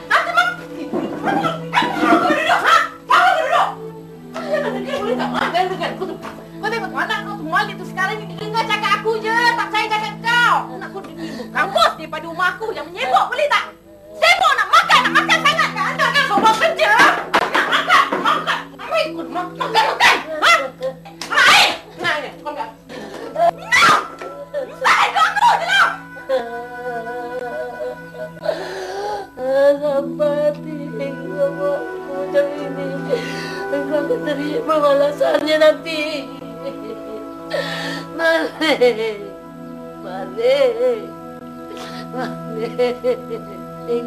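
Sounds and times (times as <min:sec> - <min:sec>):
background music: 0:00.0 - 0:44.0
woman crying out: 0:14.2 - 0:21.8, 0:23.4 - 0:28.6
women screaming and crying out: 0:23.3 - 0:26.4.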